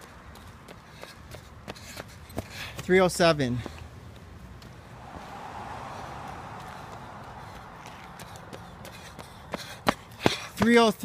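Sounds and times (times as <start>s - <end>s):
running footsteps on pavement: 0.0s - 11.0s
soft rushing noise: 4.5s - 10.3s.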